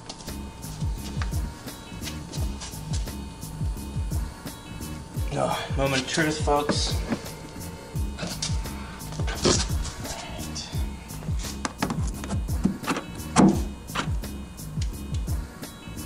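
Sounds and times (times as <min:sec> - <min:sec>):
music with steady drum beat: 0:00.3 - 0:16.0.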